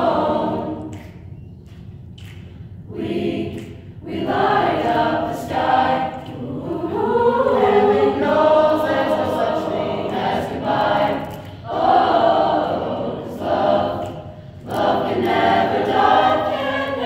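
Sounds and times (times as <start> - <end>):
children's choir singing: 0.0 - 1.2, 2.9 - 17.0.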